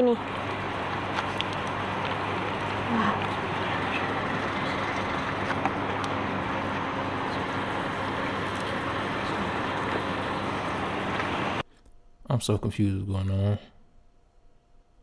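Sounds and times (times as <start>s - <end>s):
steady mechanical hum: 0.0s - 15.0s.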